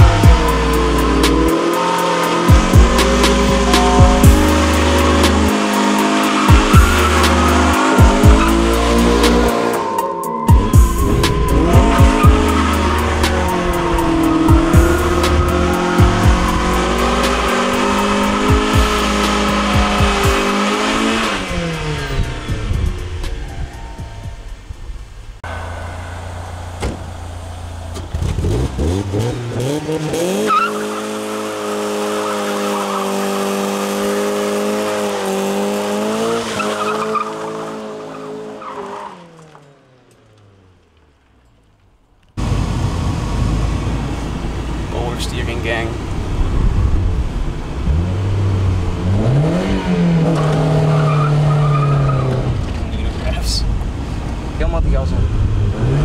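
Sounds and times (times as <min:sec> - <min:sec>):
music track: 0:00.0 - 0:37.1
tires squealing: 0:00.0 - 0:41.7, 0:42.4 - 0:56.0
car engine revving: 0:00.0 - 0:41.8, 0:42.4 - 0:56.0.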